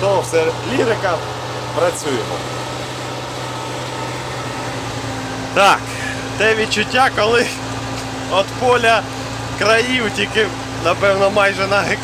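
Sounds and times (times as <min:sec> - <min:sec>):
tractor diesel engine drone: 0:00.0 - 0:12.0.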